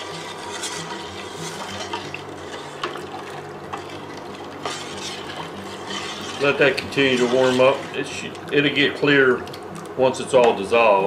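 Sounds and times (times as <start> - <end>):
ladle swishing liquid: 0.0 - 10.0.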